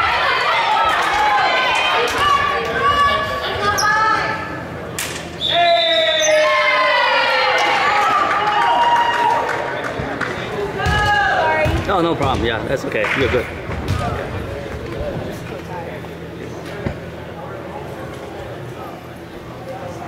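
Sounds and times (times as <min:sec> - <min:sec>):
balls bouncing on wooden floor: 0:10.8 - 0:12.7.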